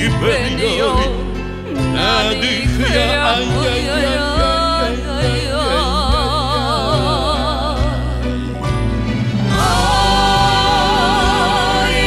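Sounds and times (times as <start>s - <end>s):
woman singing: 0.0s - 8.4s, 9.5s - 12.0s
live band playing: 0.0s - 12.0s.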